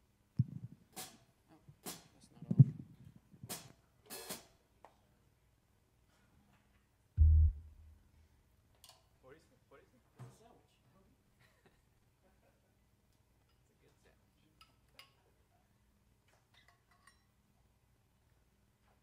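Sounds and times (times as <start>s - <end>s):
short low thud: 7.2s - 8.0s.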